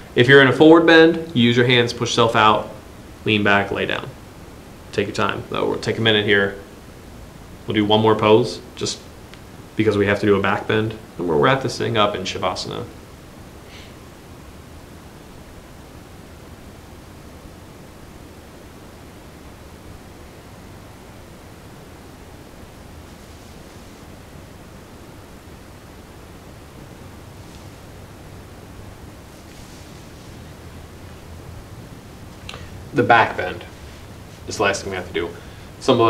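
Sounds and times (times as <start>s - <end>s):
low hiss of room tone: 0.0s - 36.0s
faint rustles: 22.8s - 24.7s, 27.1s - 32.9s, 33.5s - 34.7s.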